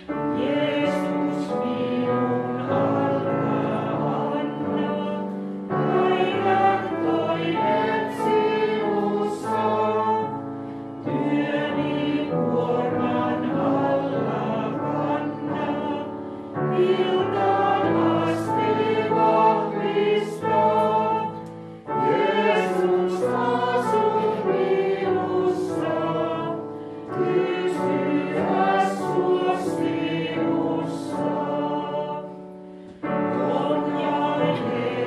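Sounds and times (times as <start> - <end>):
congregation singing a hymn: 0.0 - 35.0
electric keyboard accompaniment: 0.0 - 35.0.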